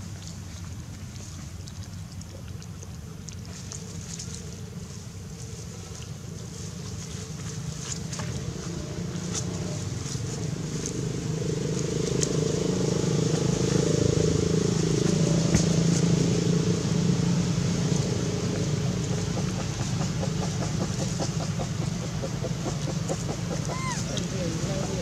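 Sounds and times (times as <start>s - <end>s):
motor engine droning: 7.4s - 25.0s.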